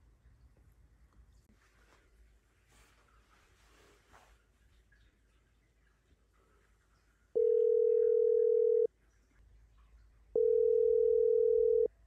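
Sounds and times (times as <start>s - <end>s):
telephone ringback tone: 7.4s - 8.9s, 10.4s - 11.9s.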